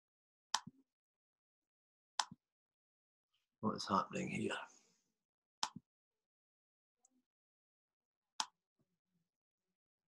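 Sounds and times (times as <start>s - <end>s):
computer mouse click: 5.6s - 5.8s.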